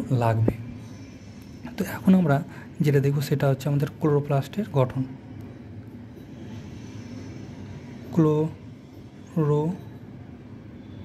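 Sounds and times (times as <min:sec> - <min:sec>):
steady background hum: 0:00.0 - 0:11.0.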